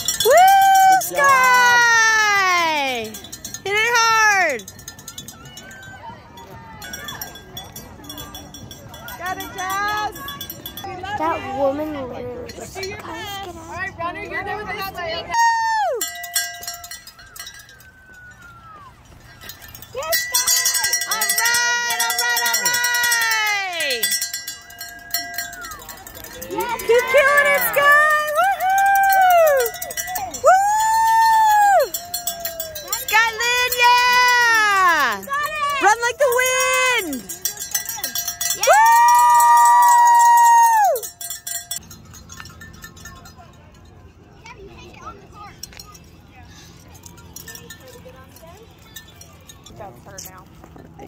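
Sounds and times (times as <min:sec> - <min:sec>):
metal bell ringing: 0:00.0 - 0:13.9, 0:14.7 - 0:50.5
spectator cheering yells: 0:26.6 - 0:29.8, 0:30.4 - 0:32.6, 0:38.6 - 0:41.0.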